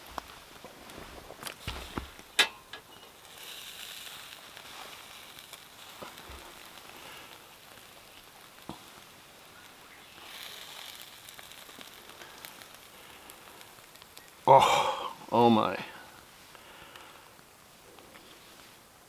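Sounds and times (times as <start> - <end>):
food sizzling in a pan: 0.0 - 17.6.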